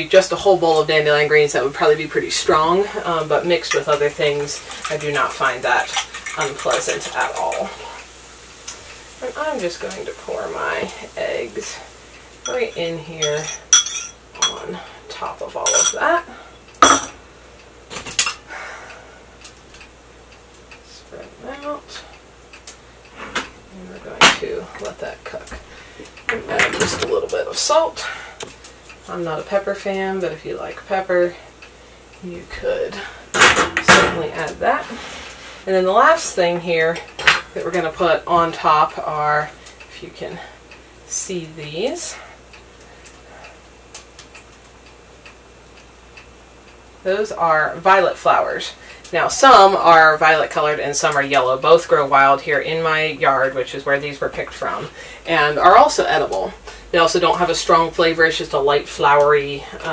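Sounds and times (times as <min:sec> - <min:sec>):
faint small ticks and clicks: 0:22.5 - 0:23.5, 0:43.9 - 0:46.9
utensil scraping a frying pan: 0:34.6 - 0:35.7.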